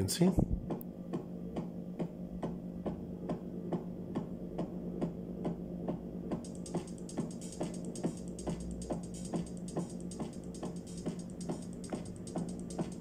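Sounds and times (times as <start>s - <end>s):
drum machine hits: 6.4s - 13.0s
fast bright ticking: 6.4s - 13.0s.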